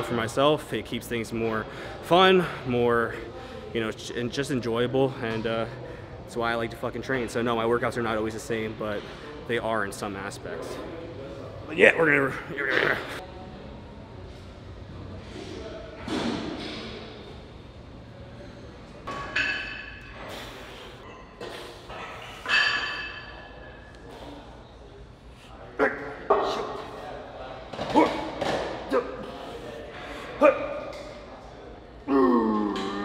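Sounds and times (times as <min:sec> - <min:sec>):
metal weights clinking: 0:22.3 - 0:23.7.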